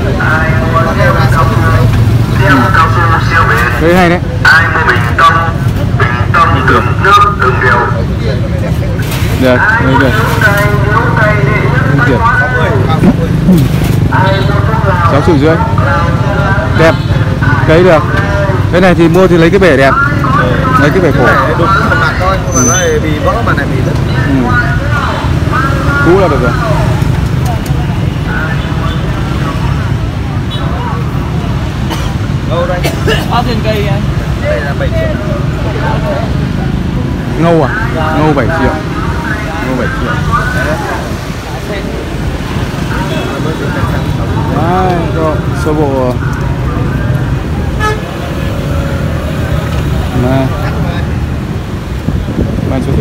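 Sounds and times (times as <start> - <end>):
low street rumble: 0.0 - 53.0
men talking: 0.0 - 53.0.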